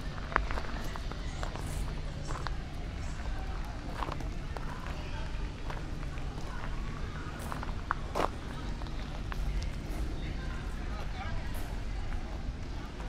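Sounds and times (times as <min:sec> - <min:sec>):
distant voices: 0:00.0 - 0:13.0
low traffic rumble: 0:00.0 - 0:13.0.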